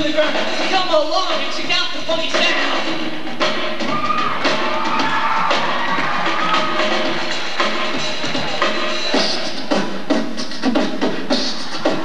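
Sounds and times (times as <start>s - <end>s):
rock drum kit: 0.0s - 12.0s.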